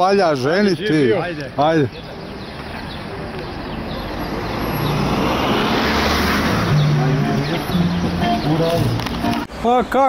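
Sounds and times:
general traffic noise: 0:00.0 - 0:10.0
car driving past: 0:04.0 - 0:09.1.

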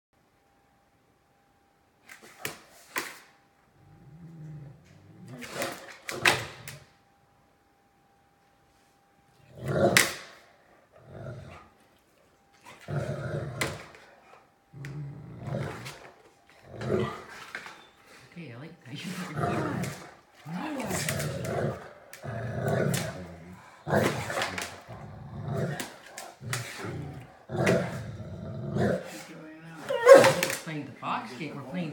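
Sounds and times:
dog barking: 0:29.9 - 0:30.5.

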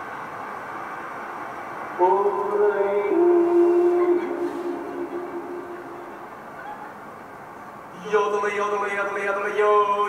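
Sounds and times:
man yodeling over speakers: 0:02.0 - 0:06.6, 0:07.9 - 0:10.0.

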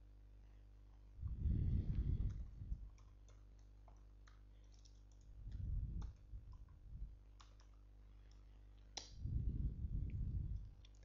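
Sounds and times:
low muffled rumble: 0:01.2 - 0:02.9, 0:05.4 - 0:07.2, 0:09.2 - 0:10.9.

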